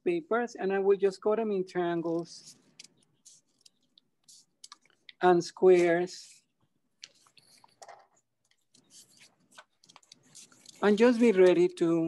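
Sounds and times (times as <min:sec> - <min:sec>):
scissors cutting paper: 0:08.6 - 0:11.6.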